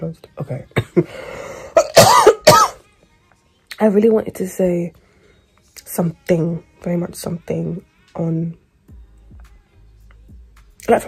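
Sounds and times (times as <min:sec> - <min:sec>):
woman coughing: 0:00.7 - 0:01.1, 0:01.7 - 0:02.8.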